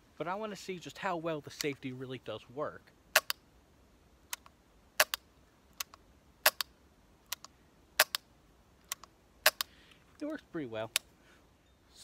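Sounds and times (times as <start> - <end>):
shotgun trigger and action clicking: 4.3 - 5.2, 5.8 - 6.7, 7.3 - 9.7.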